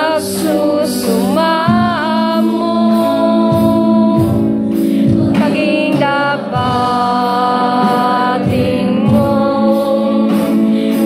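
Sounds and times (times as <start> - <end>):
electric guitar: 0.0 - 11.0
woman singing into a microphone: 0.0 - 11.0.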